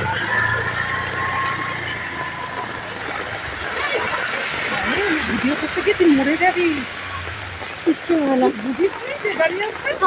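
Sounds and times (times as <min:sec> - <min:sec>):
heavy rain on road: 0:00.0 - 0:10.0
vehicle engine running: 0:00.0 - 0:10.0.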